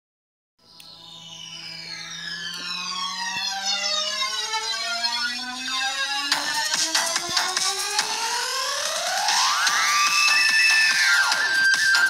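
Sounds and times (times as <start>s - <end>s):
electronic synth sweep: 0.6s - 12.0s.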